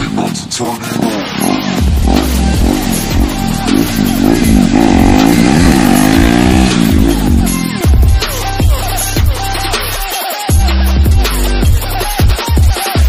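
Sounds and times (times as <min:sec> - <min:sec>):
background music: 0:00.0 - 0:13.0
motorcycle engine revving: 0:00.9 - 0:10.0.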